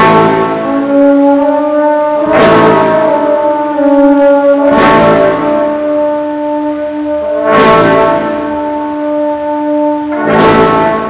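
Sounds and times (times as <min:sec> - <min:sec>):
brass band playing funeral march: 0:00.0 - 0:11.0.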